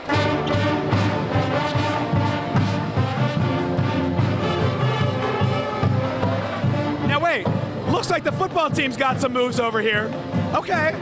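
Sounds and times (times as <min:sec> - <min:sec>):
pep band playing: 0:00.0 - 0:11.0.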